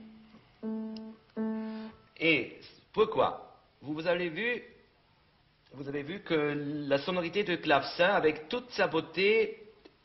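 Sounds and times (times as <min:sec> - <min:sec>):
fortepiano note struck: 0:00.0 - 0:02.0.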